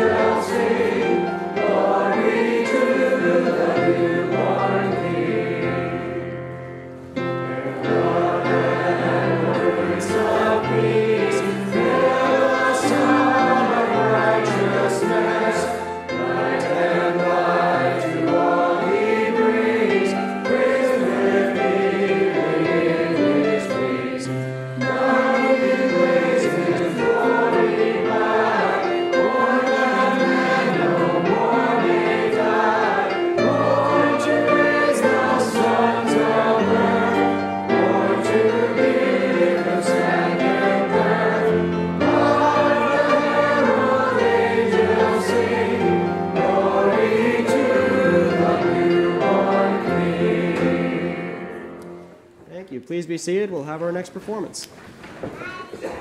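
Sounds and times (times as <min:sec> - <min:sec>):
congregation singing a hymn: 0:00.0 - 0:52.4.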